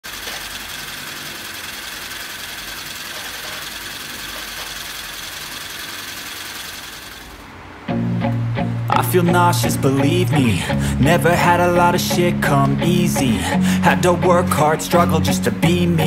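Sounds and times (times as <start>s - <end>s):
solenoid engine clattering: 0.0s - 7.5s.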